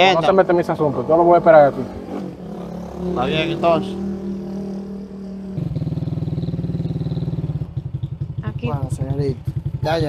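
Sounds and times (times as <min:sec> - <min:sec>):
motorcycle engine running: 0:00.0 - 0:10.0
steady engine hum: 0:00.0 - 0:10.0.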